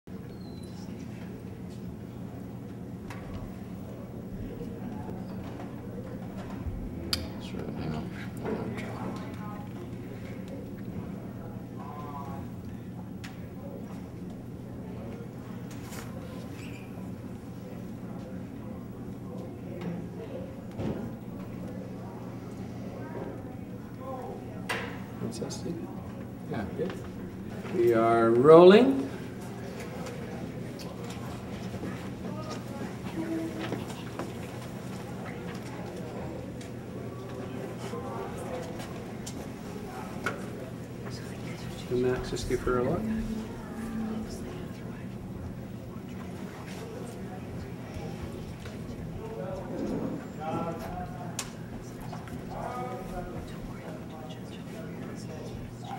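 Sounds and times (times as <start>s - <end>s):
faint indistinct voices: 0.1s - 55.9s
faint murmur: 0.1s - 55.9s
low hum: 41.2s - 46.4s.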